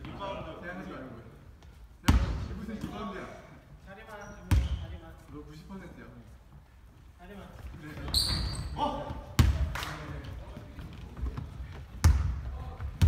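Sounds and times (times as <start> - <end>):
players' voices: 0.0 - 13.0
basketball bouncing on wooden floor: 10.8 - 13.0.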